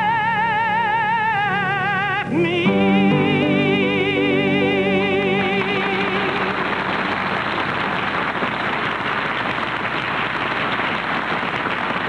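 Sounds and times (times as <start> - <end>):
studio audience applauding: 4.2 - 12.0.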